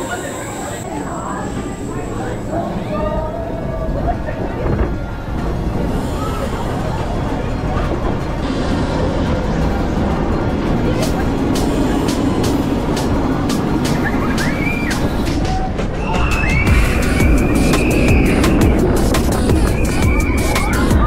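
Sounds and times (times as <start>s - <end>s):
wheels rumbling on track: 0.0s - 21.0s
rush of wind: 0.3s - 21.0s
riders screaming: 19.6s - 21.0s.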